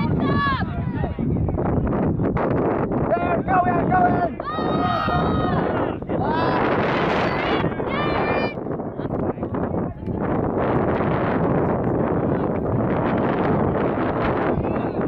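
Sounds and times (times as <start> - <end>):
people shouting: 0.0 - 1.1, 3.1 - 8.6
wind buffeting microphone: 0.0 - 15.0.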